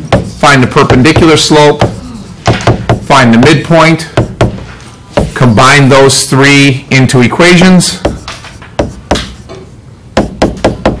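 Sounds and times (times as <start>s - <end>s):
stylus tapping on tablet: 8.1s - 9.4s.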